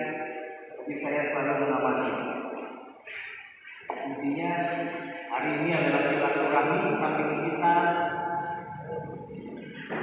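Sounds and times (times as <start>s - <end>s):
hall echo: 0.0s - 10.0s
man speaking over loudspeaker: 0.0s - 10.0s.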